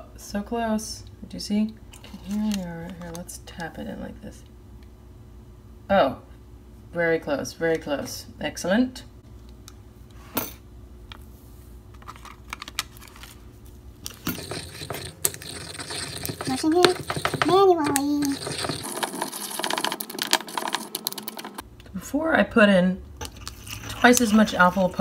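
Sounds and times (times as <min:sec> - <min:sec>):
pestle scraping in stone mortar: 0:14.2 - 0:21.6.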